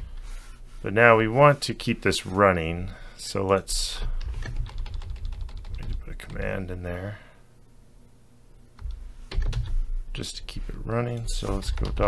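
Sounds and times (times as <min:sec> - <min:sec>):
computer keyboard typing: 0:04.2 - 0:06.5, 0:08.8 - 0:09.7, 0:11.6 - 0:12.0.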